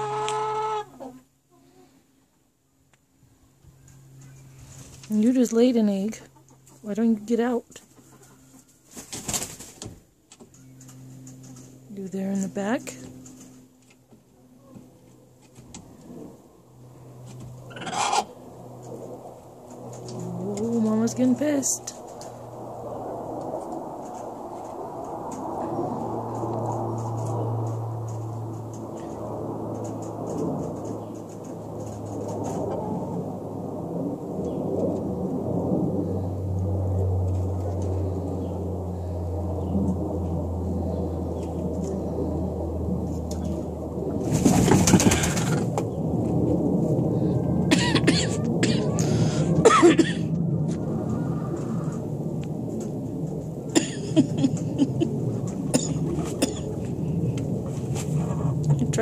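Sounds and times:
hens grumbling: 0.0 - 1.7, 17.6 - 18.6, 20.0 - 21.2.

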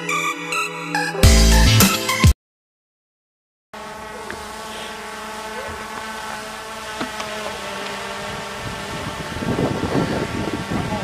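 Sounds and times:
drone propellers humming: 3.8 - 11.0.

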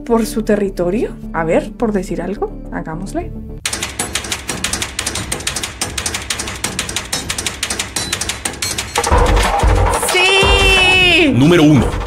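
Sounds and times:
rapid mechanical clicks: 3.6 - 12.0.

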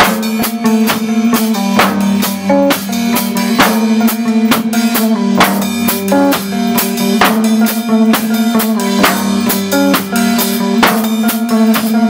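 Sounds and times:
drum and cymbal hits: 0.0 - 12.0
electric bass guitar notes: 0.0 - 12.0.

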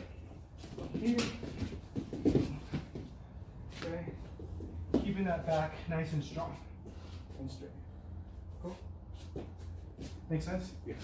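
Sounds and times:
feet scuffling on a mat: 0.0 - 7.4, 8.5 - 10.3.

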